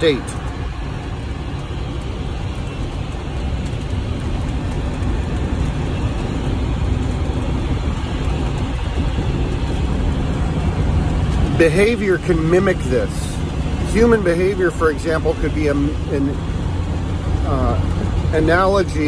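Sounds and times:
vehicle road and engine rumble: 0.0 - 19.0.

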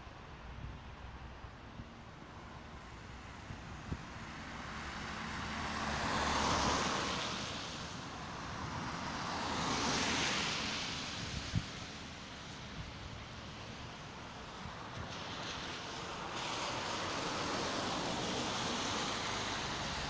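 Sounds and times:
cars passing on wet road: 0.0 - 20.0.

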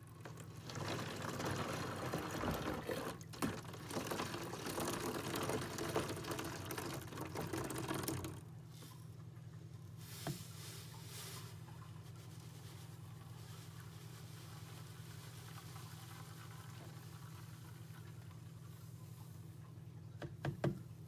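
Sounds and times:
liquid pouring into plastic jug: 0.0 - 8.6.

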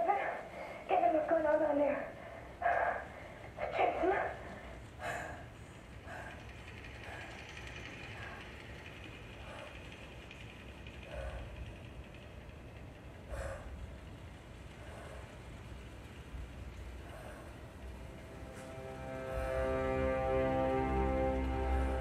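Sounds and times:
faint hum and hiss: 0.0 - 22.0
film soundtrack over speakers: 0.0 - 22.0
low rumble: 2.1 - 22.0.

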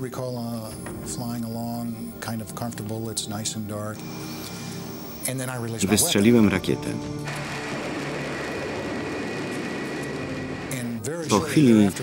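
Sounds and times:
quiet background music: 0.0 - 12.0
jet propulsion roar: 7.3 - 11.0.

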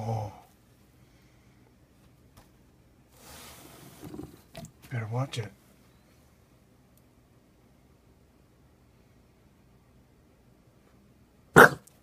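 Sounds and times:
dog barking: 11.6 - 11.9.

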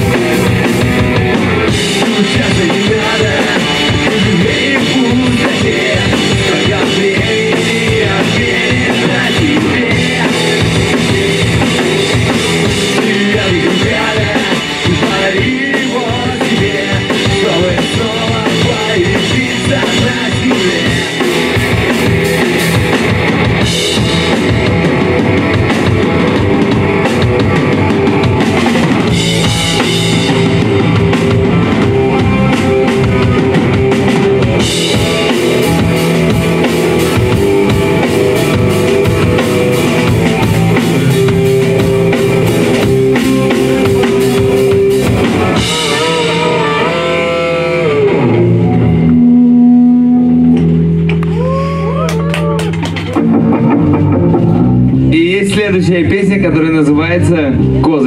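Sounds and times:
drum kit: 0.0 - 58.0
rock band playing: 0.0 - 58.0
sustained bass notes: 0.0 - 58.0
pitch-bending guitar notes: 17.2 - 58.0.

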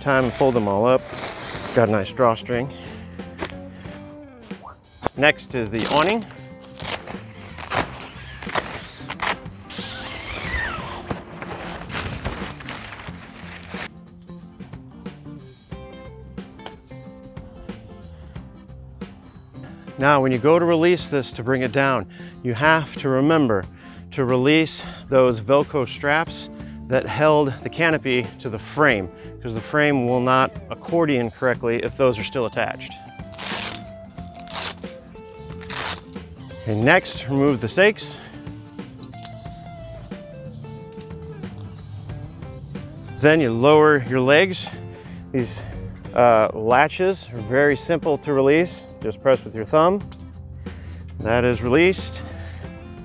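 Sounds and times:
background music: 0.0 - 53.0
fabric rustling: 0.2 - 1.9, 5.8 - 13.9, 33.2 - 34.8, 35.4 - 36.2
velcro ripping: 0.3 - 2.0, 5.7 - 13.9, 33.2 - 36.3.

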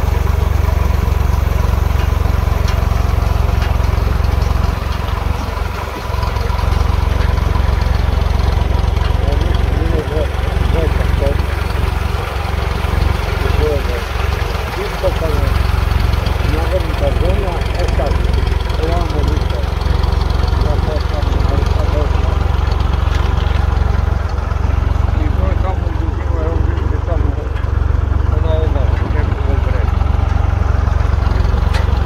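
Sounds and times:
tractor engine droning: 0.0 - 32.0.

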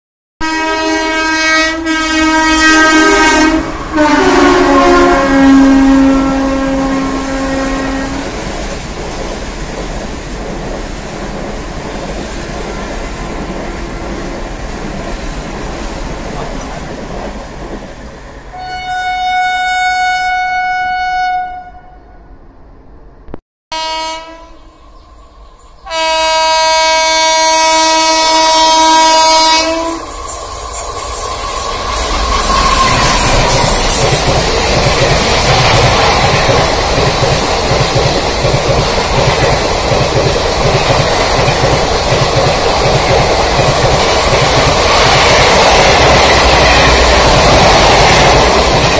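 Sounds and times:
locomotive horn: 0.4 - 8.4, 18.5 - 22.2, 23.7 - 24.8, 25.8 - 30.1
train rushing past: 0.4 - 19.3, 22.1 - 48.9.

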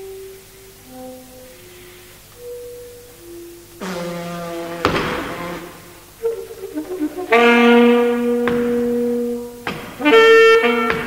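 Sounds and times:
alto saxophone: 0.0 - 2.8, 3.8 - 11.0.

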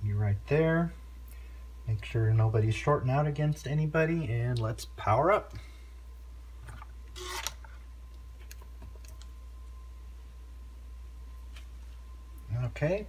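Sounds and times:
low steady hum: 0.0 - 13.0
faint high whine: 9.0 - 13.0.

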